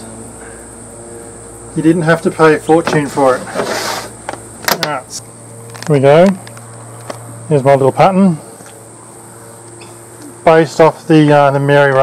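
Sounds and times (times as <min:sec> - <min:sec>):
steady background hum: 0:00.0 - 0:12.0
person speaking: 0:01.8 - 0:03.8.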